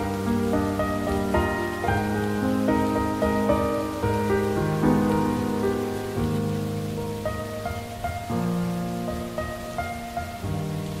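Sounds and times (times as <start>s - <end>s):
rain falling: 0.0s - 11.0s
slow soft instrumental music: 0.0s - 11.0s.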